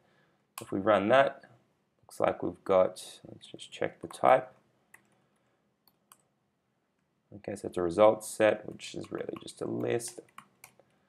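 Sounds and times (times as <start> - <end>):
computer clicks: 4.9 - 6.3, 8.7 - 10.9.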